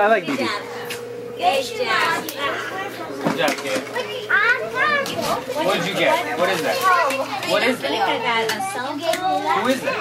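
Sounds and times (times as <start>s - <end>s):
children chattering: 0.3s - 10.0s
high-pitched child's voice: 4.0s - 5.6s, 6.7s - 10.0s.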